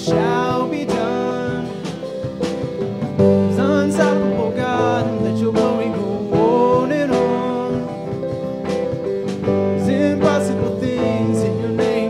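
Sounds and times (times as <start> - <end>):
guitar: 0.0 - 12.0
keyboard: 0.0 - 12.0
person singing: 0.0 - 12.0.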